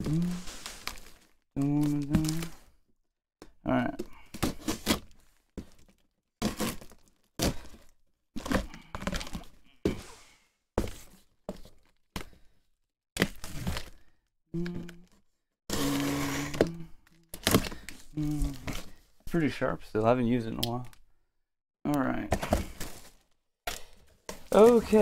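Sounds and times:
knife cutting tape and cardboard: 4.4s - 5.1s, 15.7s - 18.8s
cardboard knocks and crinkling: 22.3s - 25.0s.

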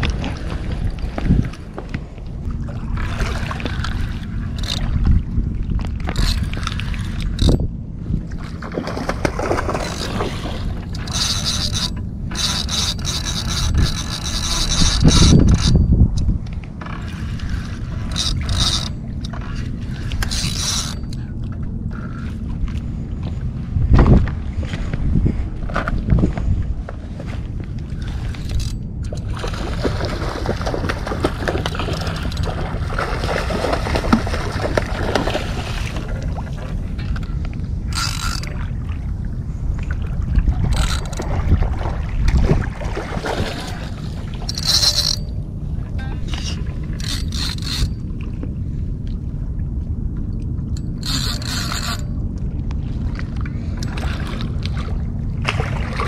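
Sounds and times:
wind buffeting microphone: 0.0s - 56.0s
fishing reel whirring: 3.6s - 5.0s, 6.1s - 7.7s, 9.8s - 16.0s, 16.9s - 21.3s, 21.9s - 22.4s, 28.0s - 29.3s, 31.2s - 32.8s, 37.9s - 38.6s, 40.7s - 41.3s, 43.4s - 45.4s, 46.2s - 48.1s, 50.7s - 52.2s
water lapping on rocks: 8.3s - 15.7s, 27.9s - 45.2s, 52.7s - 56.0s.

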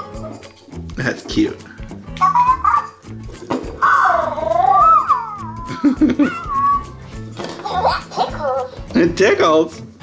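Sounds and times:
background music: 0.0s - 10.0s
toy warbling creature sounds: 2.2s - 3.0s, 3.8s - 5.7s.

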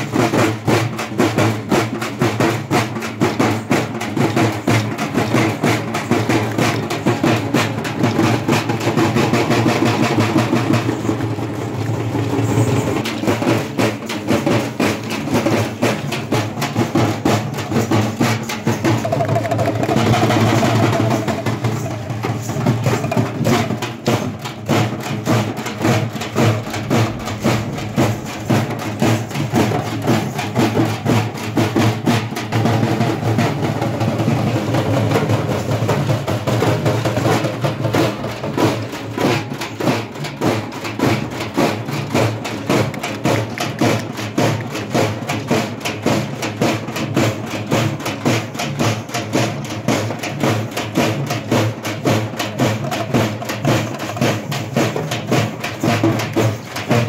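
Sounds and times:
barrel drums beaten with sticks: 0.0s - 57.0s
frame drums: 0.0s - 57.0s.

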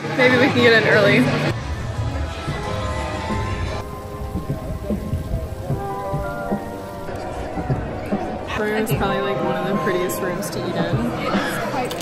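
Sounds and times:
faint music: 0.0s - 12.0s.

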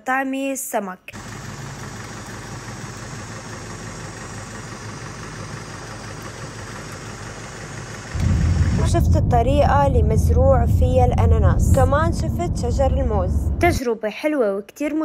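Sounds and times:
vehicle engine running: 1.2s - 13.8s
deep engine rumble: 1.4s - 13.9s.

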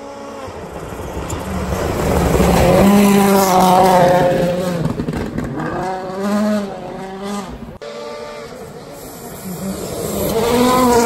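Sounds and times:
distant rally car engine approaching: 0.0s - 11.0s
rally car engine revving: 0.0s - 11.0s.

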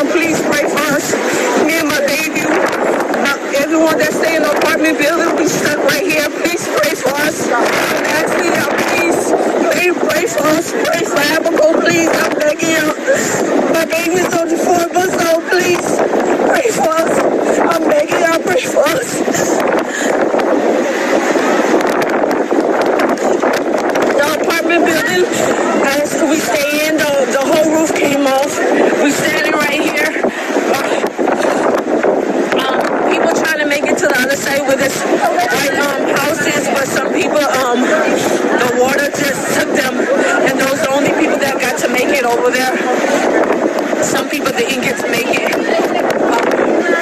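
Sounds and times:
people's voices: 0.0s - 47.0s
rain: 0.0s - 47.0s
strong wind: 0.0s - 47.0s.

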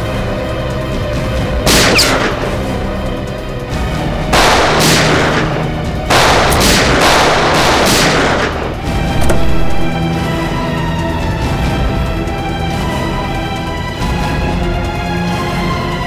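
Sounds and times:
dramatic background score: 0.0s - 16.0s
gunshots with echo: 1.7s - 2.8s, 4.3s - 10.0s.

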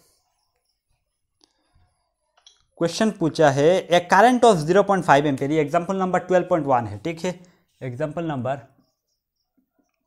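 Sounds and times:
man speaking: 2.8s - 8.8s.

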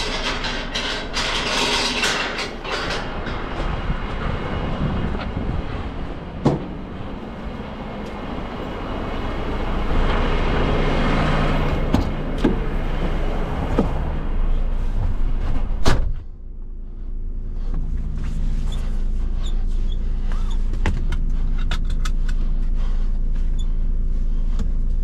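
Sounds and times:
metal gate rattling: 0.0s - 5.4s
diesel truck engine idling: 2.5s - 25.0s.

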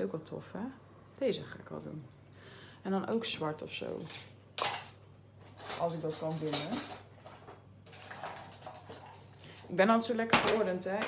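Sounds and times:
craft supplies clattering: 3.9s - 9.3s.

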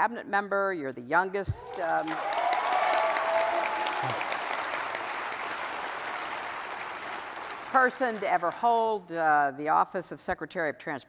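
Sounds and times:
audience applauding: 1.6s - 8.7s.

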